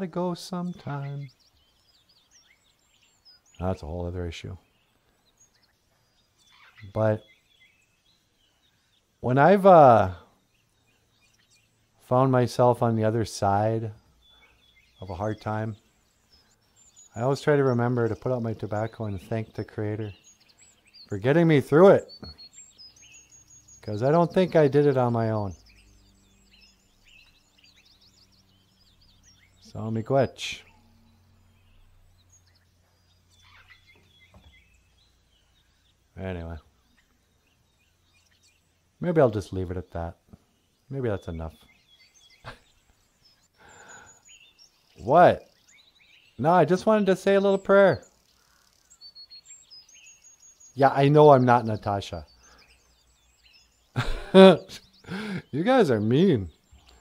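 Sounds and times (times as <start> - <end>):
faint bird chirps: 0.0 - 57.0.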